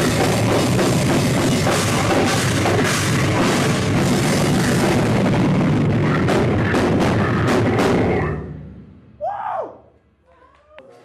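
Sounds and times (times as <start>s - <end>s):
heavy metal music: 0.0s - 9.1s.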